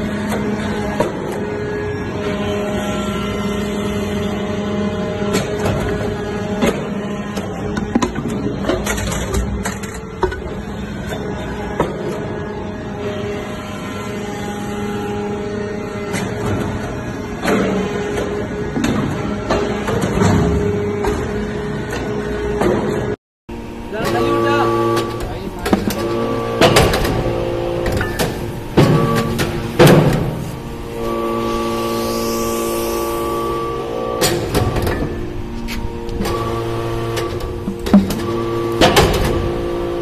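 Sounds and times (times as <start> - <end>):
press machine hum: 13.9 - 40.0.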